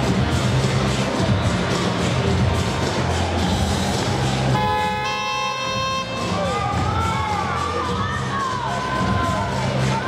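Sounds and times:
arena music with heavy beat: 0.0 - 10.0
electronic buzzer honk: 4.6 - 6.4.

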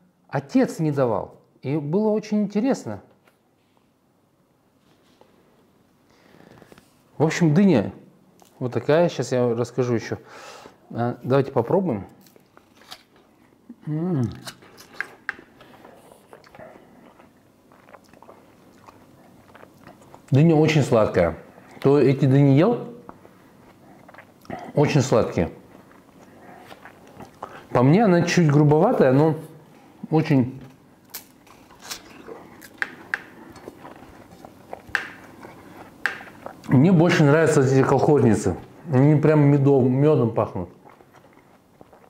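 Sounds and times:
crisp crunches: 12.2 - 13.2
wet chewing with small crunches: 14.2 - 21.9, 23.0 - 27.7, 31.0 - 36.8, 40.5 - 42.0.

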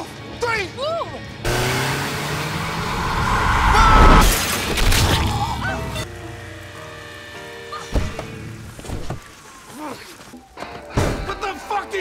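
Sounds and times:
car engine accelerating: 1.4 - 7.3
high steady squeal: 2.7 - 4.3.

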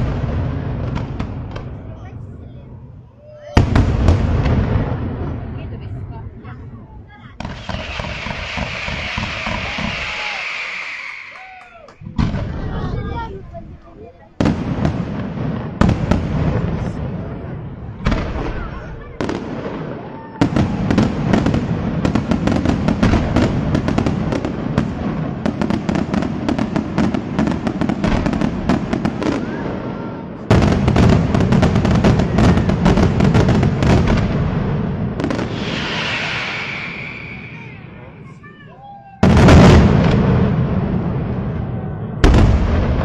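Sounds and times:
fireworks crackling: 0.0 - 2.7, 3.3 - 41.5
fireworks bangs: 0.0 - 43.0.

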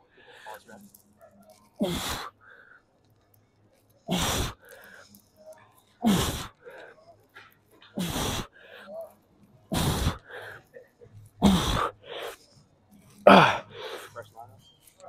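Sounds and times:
quiet breathing: 0.0 - 15.0
hissing exhalations with grunts: 1.7 - 2.8, 4.0 - 5.2, 6.0 - 7.0, 7.8 - 8.9, 9.7 - 12.5, 13.2 - 14.3.

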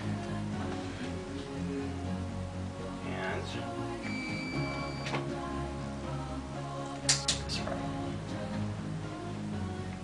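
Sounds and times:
music of held tones: 0.0 - 10.0.

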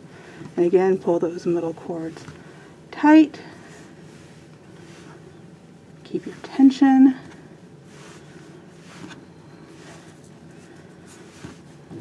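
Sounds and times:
low room hum: 0.0 - 12.0
cord rustling: 7.3 - 12.0.

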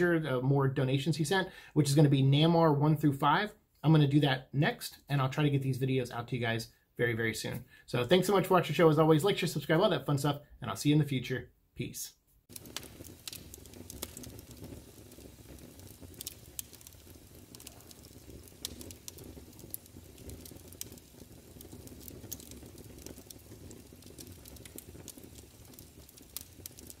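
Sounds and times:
crackles and pops: 11.2 - 27.0.

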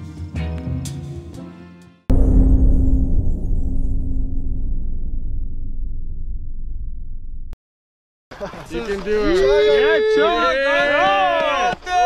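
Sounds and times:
low rumbling boom: 2.1 - 7.6
steady low tone: 2.1 - 7.6.

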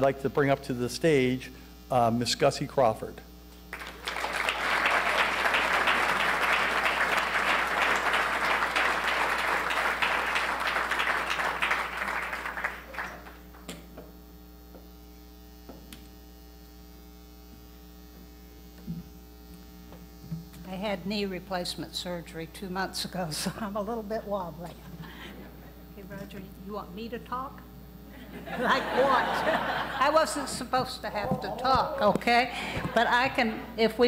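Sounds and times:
audience applause: 3.7 - 13.6.

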